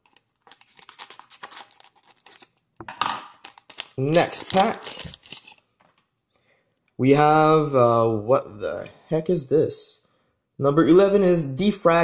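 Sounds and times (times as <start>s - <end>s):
card pack wrapper crinkling: 0.0s - 6.1s.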